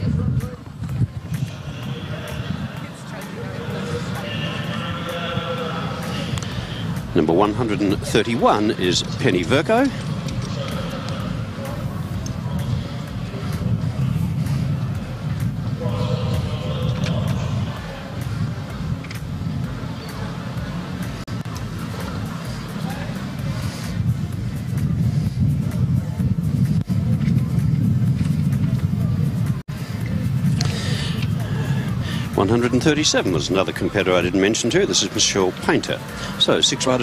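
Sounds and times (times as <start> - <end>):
faint distant voices: 0.0 - 37.0
steady low rumble: 0.0 - 37.0.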